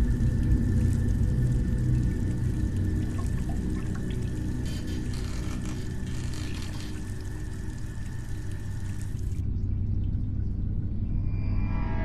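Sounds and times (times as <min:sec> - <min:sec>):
low droning music: 0:00.0 - 0:12.0
water splashing in a bowl: 0:01.8 - 0:04.6.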